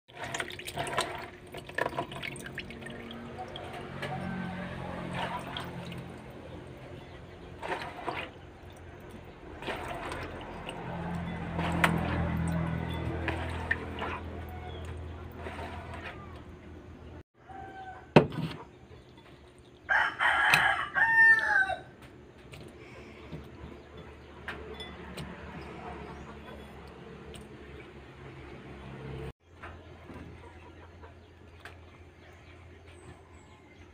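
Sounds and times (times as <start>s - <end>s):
water splashing in basin: 0.1s - 16.6s
water dripping: 0.2s - 4.3s.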